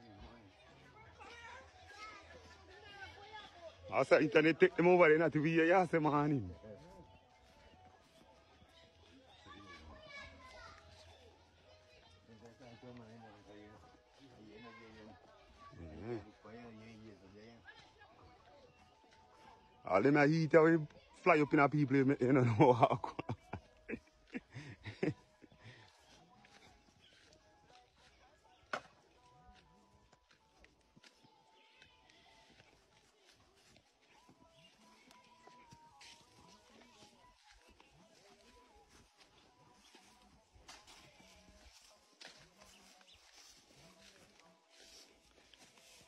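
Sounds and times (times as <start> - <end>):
footsteps on dirt path: 0.0 - 46.0.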